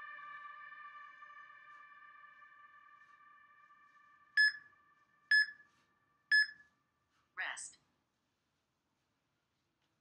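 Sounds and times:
short electronic timer beeps: 6.3s - 6.6s.

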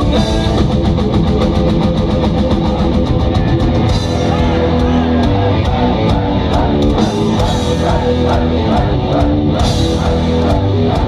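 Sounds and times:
bass guitar: 0.0s - 11.0s
distorted electric guitars: 0.0s - 11.0s
drum kit fast beat: 0.0s - 11.0s.

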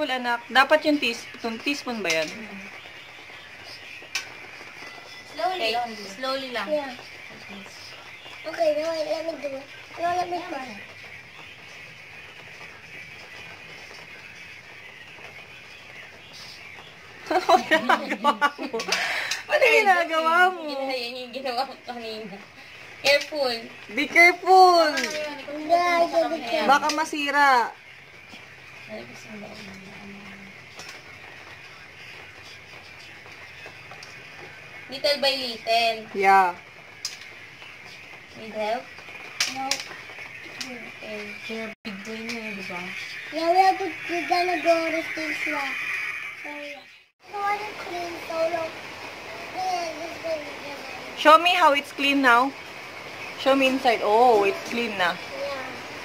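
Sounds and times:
faint high hiss: 47.2s - 56.0s.

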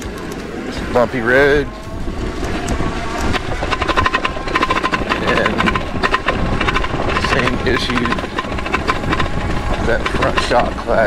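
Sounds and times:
bike suspension fork rattling: 0.0s - 11.0s
steady whine: 0.0s - 11.0s
tyres and wind rumble: 0.0s - 11.0s.

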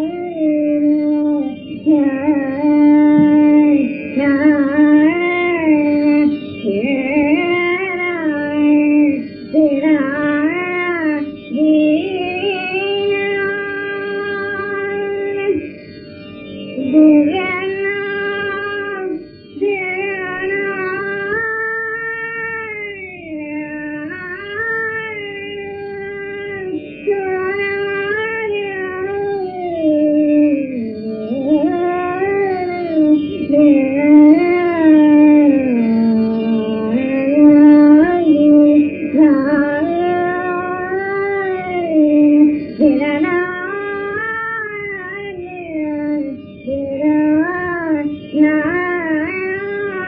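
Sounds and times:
woman singing long held notes: 0.0s - 15.7s, 16.8s - 50.0s.

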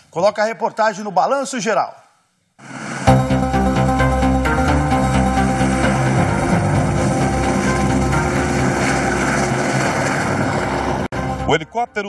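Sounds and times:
background music: 3.1s - 12.0s
helicopter rotor and turbine: 4.7s - 11.1s.

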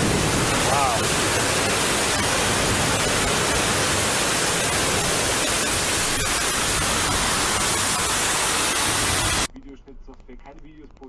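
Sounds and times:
floodwater rushing: 0.0s - 9.5s.

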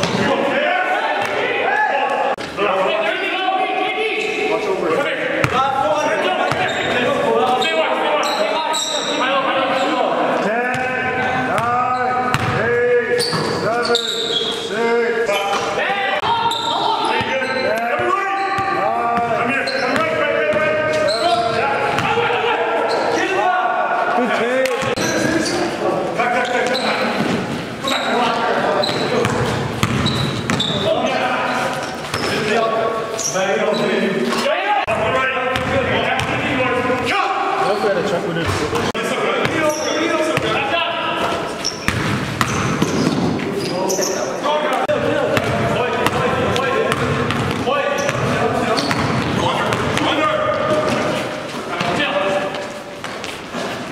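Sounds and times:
players calling out: 0.0s - 53.9s
sneakers squeaking: 4.1s - 4.7s, 5.4s - 23.4s, 24.7s - 34.5s, 35.5s - 53.9s
basketball bouncing on court: 5.4s - 5.6s, 11.5s - 12.6s, 28.8s - 30.9s, 35.5s - 36.4s, 40.4s - 40.6s, 41.7s - 43.5s, 45.3s - 51.1s.

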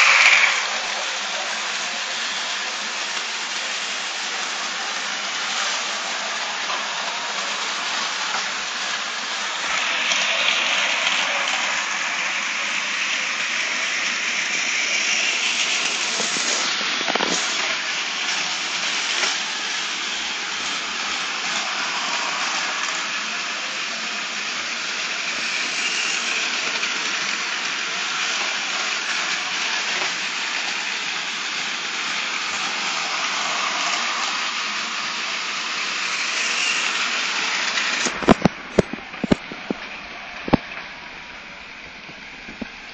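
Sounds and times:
toy trains whirring and rattling: 0.0s - 42.9s.

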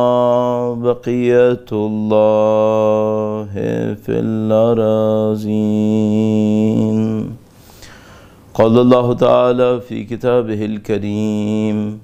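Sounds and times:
man chanting melodically: 0.0s - 7.4s, 8.5s - 12.0s.

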